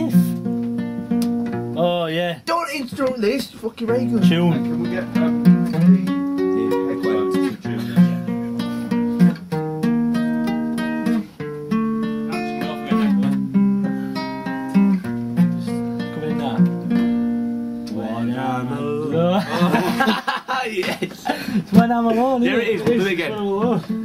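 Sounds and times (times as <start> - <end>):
acoustic guitar fingerpicking: 0.0 - 2.0, 3.0 - 20.0, 20.8 - 24.0.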